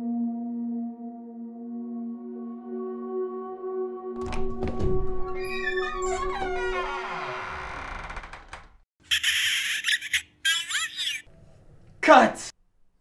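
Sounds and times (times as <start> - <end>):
door creaking open: 4.2 - 10.2.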